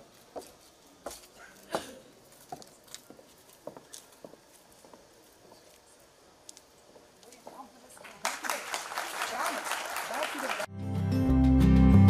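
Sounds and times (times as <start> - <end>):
audience applause: 8.0 - 10.7
bass-heavy instrumental music: 10.7 - 12.0.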